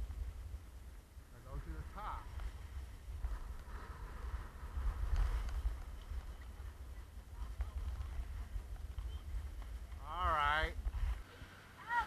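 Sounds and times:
wind buffeting microphone: 0.0s - 11.4s
skis scraping on snow: 1.4s - 11.6s
faint clicks of skis and poles: 2.2s - 11.7s.

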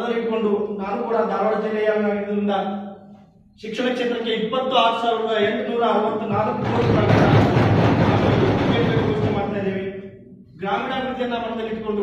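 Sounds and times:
person giving speech: 3.6s - 12.0s.

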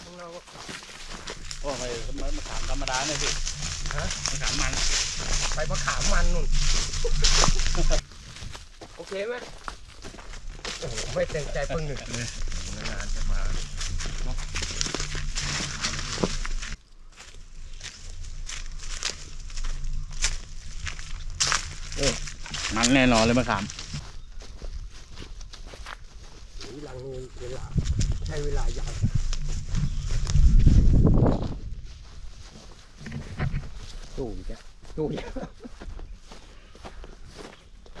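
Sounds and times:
footsteps on dry leaves: 0.0s - 38.0s.

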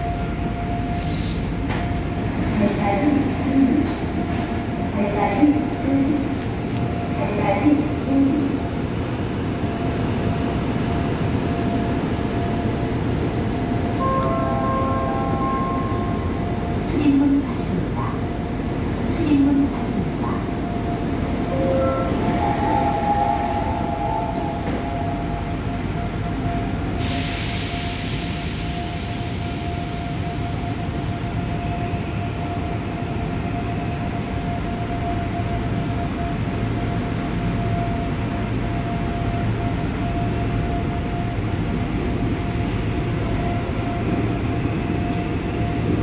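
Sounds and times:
train ride rumble: 0.0s - 46.0s.

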